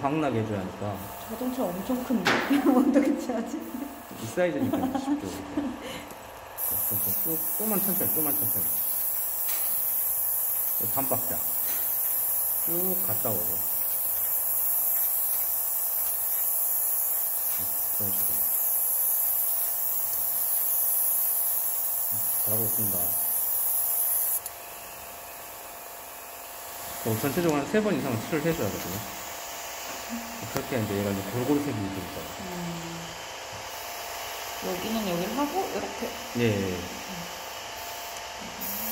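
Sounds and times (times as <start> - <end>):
airbrush spraying paint: 0.1 - 38.9
low voice hum: 32.4 - 33.2.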